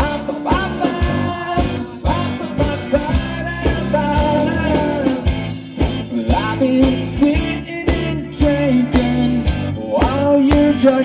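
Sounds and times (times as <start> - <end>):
drum hits: 0.0 - 10.8
bass guitar: 0.0 - 11.0
electric guitar: 0.0 - 11.0
person singing: 0.0 - 11.0.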